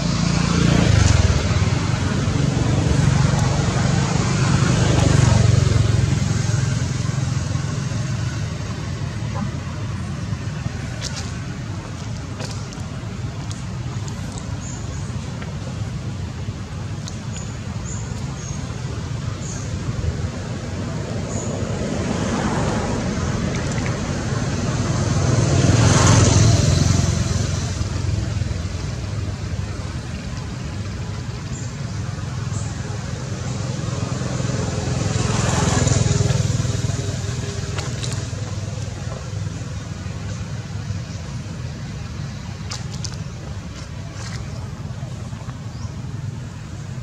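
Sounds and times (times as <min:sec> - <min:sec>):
traffic hum: 0:00.0 - 0:47.0
vehicles passing by: 0:00.0 - 0:47.0.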